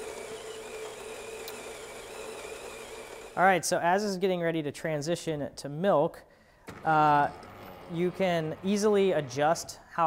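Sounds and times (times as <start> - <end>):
espresso machine humming: 0.0 - 3.4.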